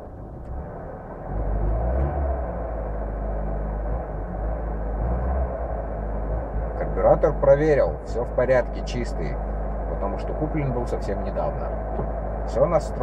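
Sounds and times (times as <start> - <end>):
car engine idling unevenly: 0.0 - 13.0.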